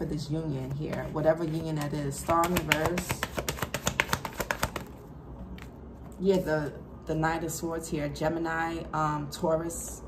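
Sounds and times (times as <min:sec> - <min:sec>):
cards being shuffled: 0:01.0 - 0:05.8.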